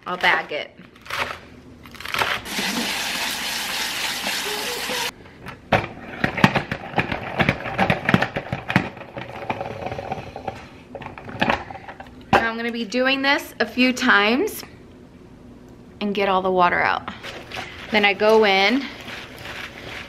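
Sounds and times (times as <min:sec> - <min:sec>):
tap water running: 0:02.5 - 0:05.1.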